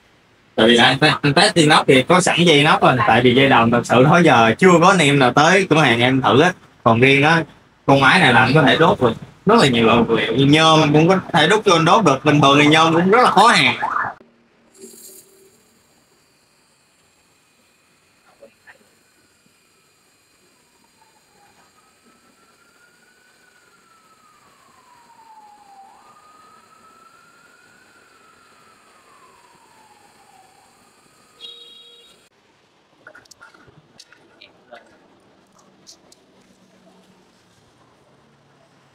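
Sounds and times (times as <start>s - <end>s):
faint siren wailing: 0.6s - 14.2s, 16.7s - 32.3s
laser welder hiss: 14.7s - 32.3s.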